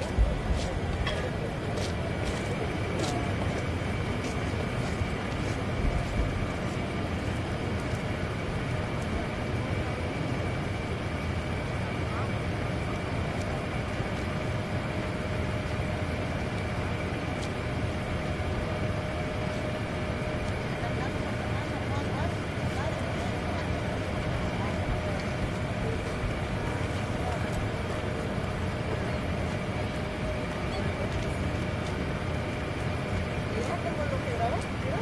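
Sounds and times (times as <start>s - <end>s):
indistinct crowd voices: 0.0s - 35.0s.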